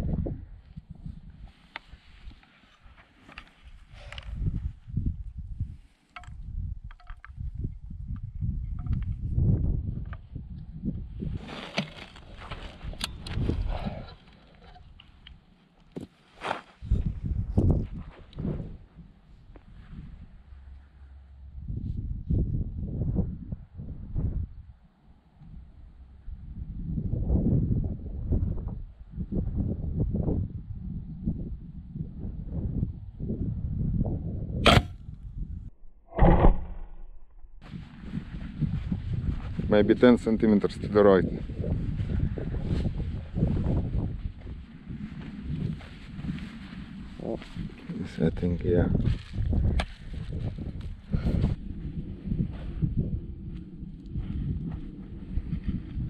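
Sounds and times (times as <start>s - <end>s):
wind rumbling on microphone: 0.0s - 16.1s, 16.8s - 56.0s
crossbow clicks and knocks: 6.1s - 7.4s, 8.1s - 9.2s
crossbow string crack: 34.6s - 35.0s.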